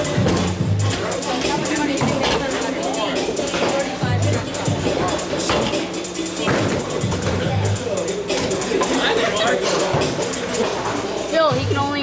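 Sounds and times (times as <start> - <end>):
hubbub of voices: 0.0 - 12.0
loud music with bass beat: 0.0 - 12.0.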